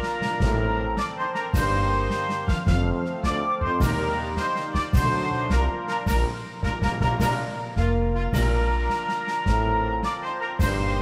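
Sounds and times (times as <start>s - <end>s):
brass sustained chords: 0.0s - 11.0s
ceremonial band music: 0.0s - 11.0s.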